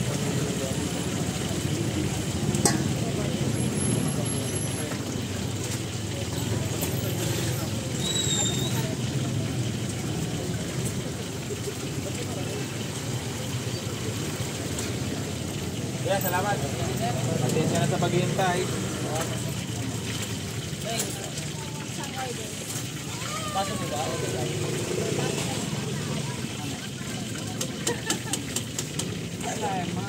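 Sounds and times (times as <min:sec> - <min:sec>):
people talking: 0:00.0 - 0:20.2, 0:20.8 - 0:30.0
low rumble of traffic: 0:00.0 - 0:30.0.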